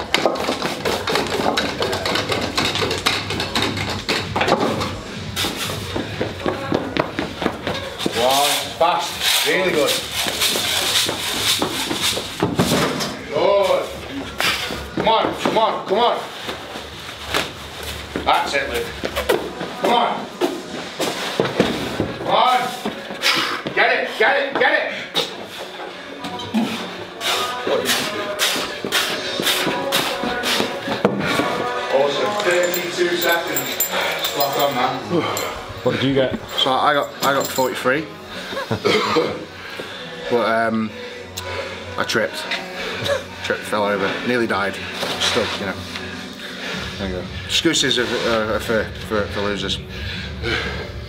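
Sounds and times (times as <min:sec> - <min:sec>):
heavy running footsteps on rubber: 0:00.0 - 0:08.3
music: 0:00.0 - 0:51.0.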